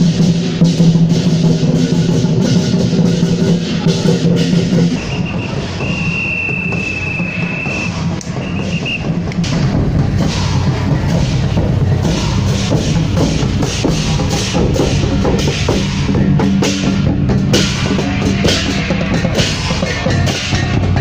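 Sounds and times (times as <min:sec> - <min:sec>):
large drums and hand cymbals: 0:00.0 - 0:21.0.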